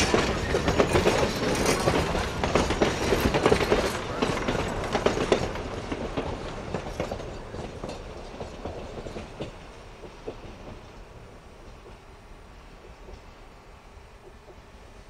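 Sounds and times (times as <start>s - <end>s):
train wheels clattering over rail joints: 0.0s - 15.0s.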